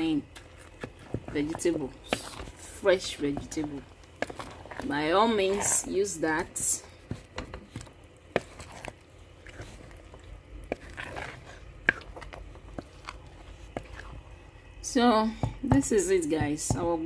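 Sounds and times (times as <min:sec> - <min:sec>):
soup simmering with popping bubbles: 0:00.1 - 0:05.5, 0:06.2 - 0:14.8.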